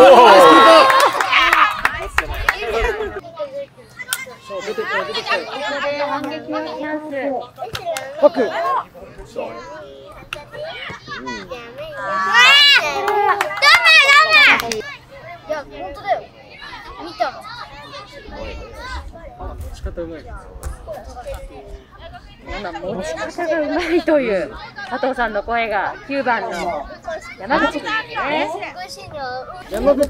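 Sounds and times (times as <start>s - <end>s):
children shouting: 0.0s - 2.6s, 10.6s - 19.0s
children calling and shouting: 0.0s - 30.0s.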